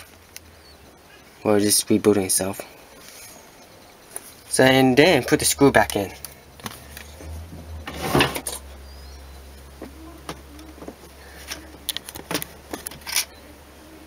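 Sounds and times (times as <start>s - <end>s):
low steady hum: 0.0s - 14.0s
small metal parts clicking: 11.5s - 13.3s.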